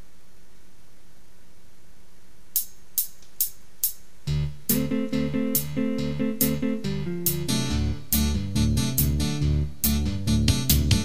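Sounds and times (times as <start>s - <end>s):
steady background hiss: 0.0s - 10.1s
hi-hat taps: 2.5s - 4.1s.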